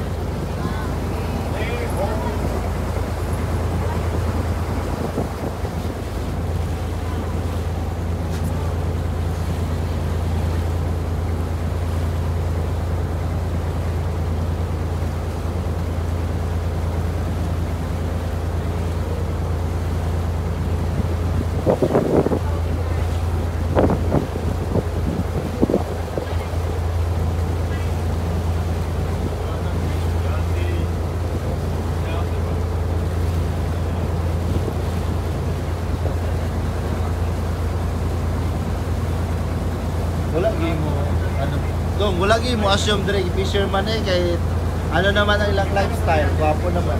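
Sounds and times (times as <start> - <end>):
boat engine droning: 0.0 - 46.9
water noise: 0.0 - 46.9
wind noise: 2.2 - 6.1, 20.9 - 23.0, 23.6 - 26.5.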